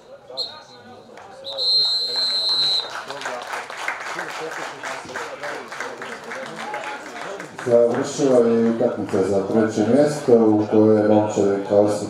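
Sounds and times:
referee's whistle blasts: 0.3 - 3.0
people clapping: 1.1 - 9.7.

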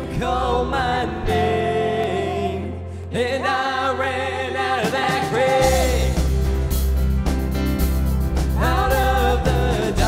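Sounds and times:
man and woman singing: 0.0 - 6.3, 8.6 - 10.0
deep bass: 5.6 - 10.0.

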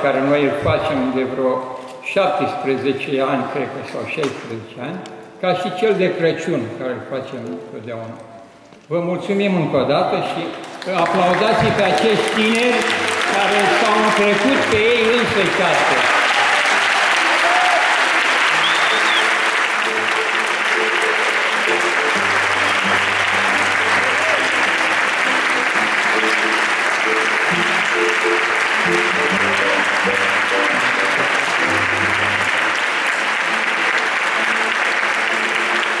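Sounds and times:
audience applauding: 10.5 - 36.0.

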